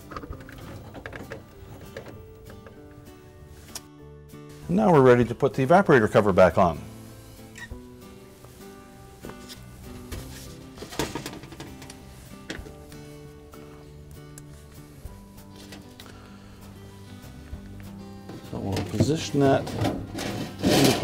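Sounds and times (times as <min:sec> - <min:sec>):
soft sustained background music: 0:00.0 - 0:21.0.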